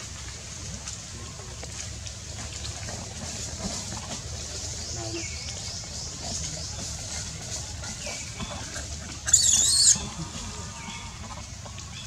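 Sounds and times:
baby monkey squealing: 0:09.3 - 0:10.0.

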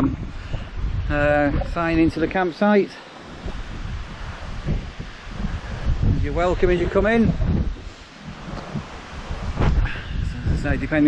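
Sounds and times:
low rumbles: 0:00.0 - 0:11.0
wind buffeting microphone: 0:00.0 - 0:11.0.

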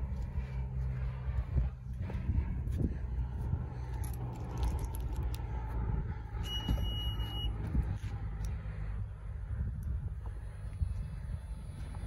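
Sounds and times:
low rumble: 0:00.0 - 0:12.0
high electronic beep: 0:06.4 - 0:07.5.

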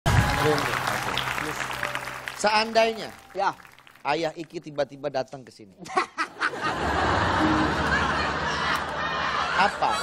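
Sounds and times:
audience applauding and cheering: 0:00.0 - 0:04.5, 0:06.7 - 0:10.0.

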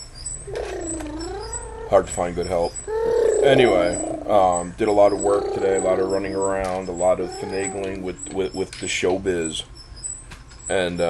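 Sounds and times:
voiced hum: 0:00.0 - 0:11.0.

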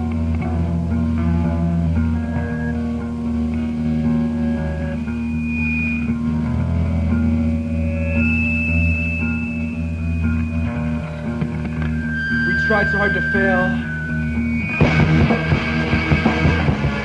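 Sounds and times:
bass and guitar playing: 0:00.0 - 0:17.0.

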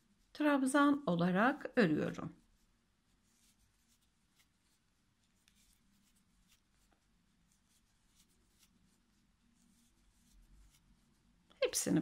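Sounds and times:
crochet hook ticks and rustles: 0:02.4 - 0:09.0, 0:09.6 - 0:11.2.

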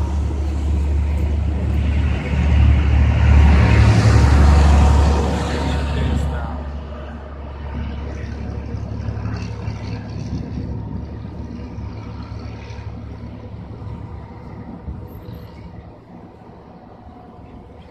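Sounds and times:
heavy trucks rumbling: 0:00.0 - 0:17.9.

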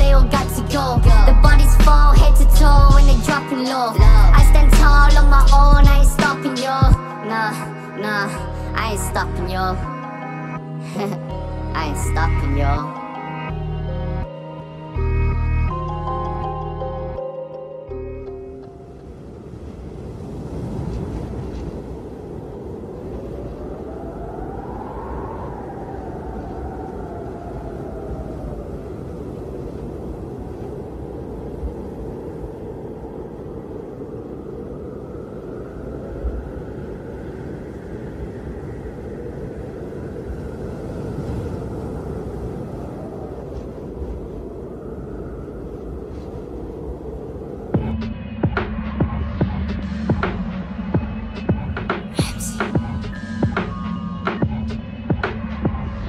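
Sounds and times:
low steady rumbling: 0:00.0 - 0:03.3, 0:04.0 - 0:06.2.

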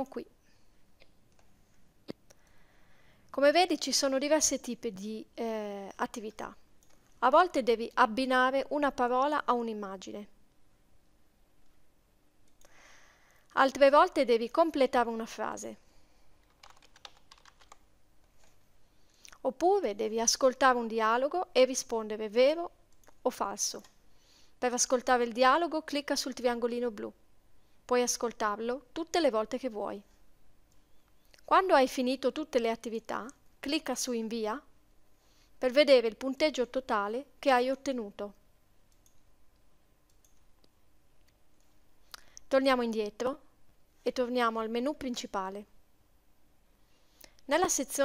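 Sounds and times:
computer mouse clicks: 0:06.8 - 0:07.2, 0:38.9 - 0:42.5
keyboard typing: 0:16.4 - 0:18.5, 0:38.9 - 0:39.3, 0:40.1 - 0:40.7.

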